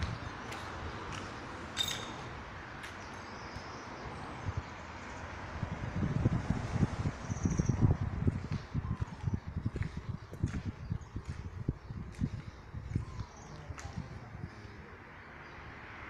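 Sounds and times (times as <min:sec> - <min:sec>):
wind buffeting microphone: 0:00.0 - 0:15.2.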